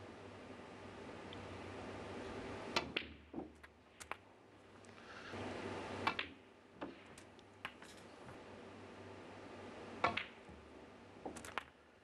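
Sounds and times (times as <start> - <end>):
snooker balls clicking: 6.1 - 8.0, 10.0 - 10.6, 11.2 - 11.8.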